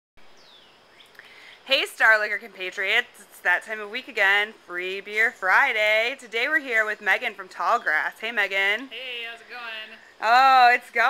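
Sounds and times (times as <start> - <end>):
bird chirp: 0.2 - 1.9
outdoor background hiss: 0.2 - 11.0
person speaking: 8.8 - 11.0.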